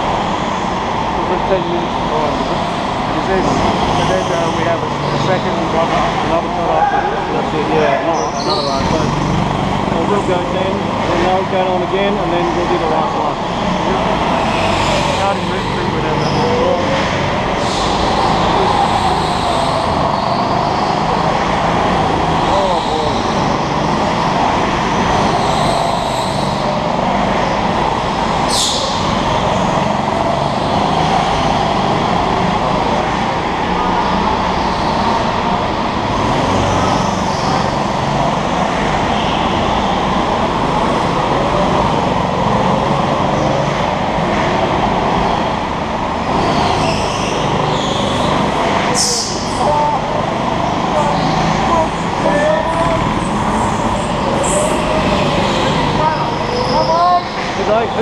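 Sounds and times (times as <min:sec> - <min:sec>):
go-kart engines running: 0:00.0 - 0:58.0.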